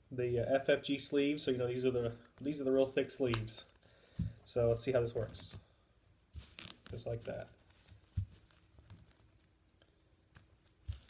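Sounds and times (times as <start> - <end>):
sleeved cards clicking: 3.3 - 3.8.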